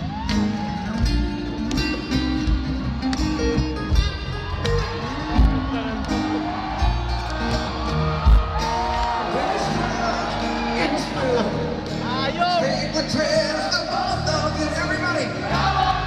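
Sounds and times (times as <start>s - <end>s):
electric guitar: 0.0s - 13.0s
crowd noise: 0.0s - 16.0s
live rock band: 0.0s - 16.0s.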